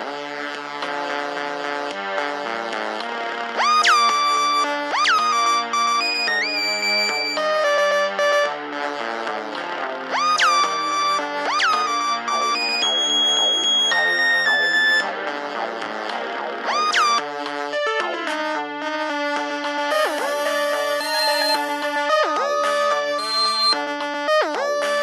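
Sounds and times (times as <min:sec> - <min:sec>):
layered synth chords: 0:02.7 - 0:23.8
swooping synthesizer lead: 0:03.6 - 0:08.6, 0:10.1 - 0:15.8, 0:16.5 - 0:17.2, 0:19.9 - 0:23.8.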